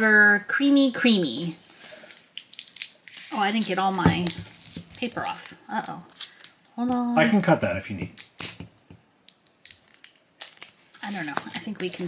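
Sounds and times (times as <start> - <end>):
paper strip crinkling and tearing: 2.1 - 5.4, 9.6 - 12.0.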